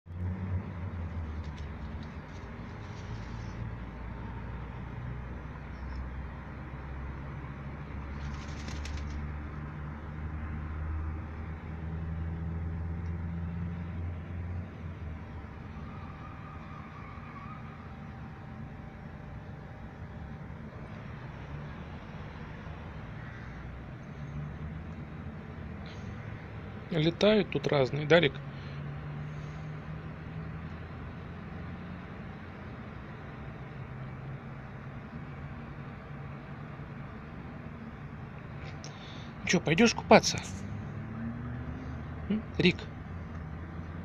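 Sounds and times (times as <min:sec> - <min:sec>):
low rumble of city traffic: 0:00.0 - 0:44.0
bird wings flapping: 0:08.1 - 0:09.3.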